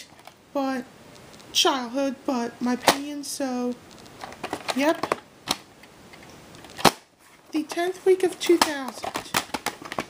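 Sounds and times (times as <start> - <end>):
plastic case snapping shut: 4.3 - 5.7, 6.7 - 7.0, 8.6 - 10.0
plastic case clicking: 8.4 - 10.0.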